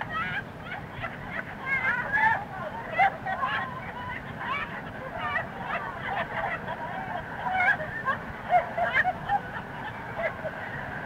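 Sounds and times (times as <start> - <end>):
crowd laughing: 0.0 - 11.0.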